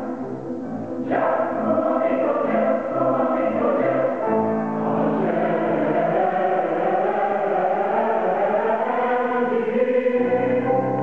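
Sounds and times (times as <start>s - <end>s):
mixed choir singing: 1.0s - 11.0s.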